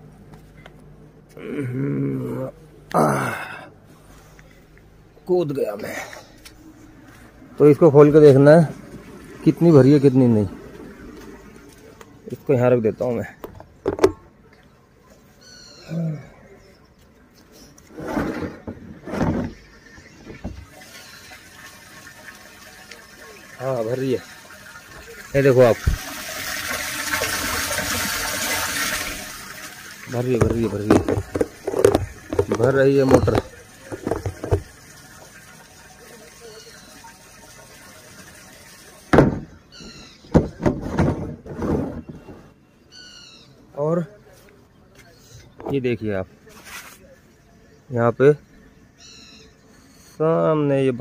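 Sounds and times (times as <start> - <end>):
man grunting with effort: 1.4 - 3.7, 15.9 - 16.4
water pouring into a tank: 7.6 - 11.9, 19.5 - 39.6
plastic scraping and rubbing: 17.8 - 20.7, 30.4 - 34.7, 40.2 - 42.6.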